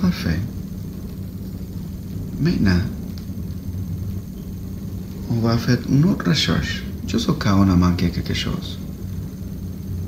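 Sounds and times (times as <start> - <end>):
faint hiss: 0.0 - 10.0
low background hum: 0.0 - 10.0.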